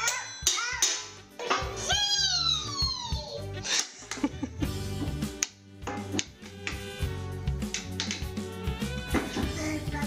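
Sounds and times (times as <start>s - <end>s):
music with steady beat: 4.0s - 10.0s
drumstick hitting small drum: 5.4s - 6.9s, 7.6s - 8.5s.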